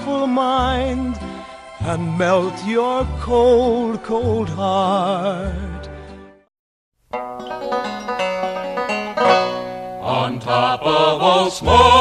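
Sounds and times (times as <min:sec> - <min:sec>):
sung ballad: 0:00.0 - 0:06.4
plucked banjo: 0:07.1 - 0:10.4
band playing: 0:07.2 - 0:10.6.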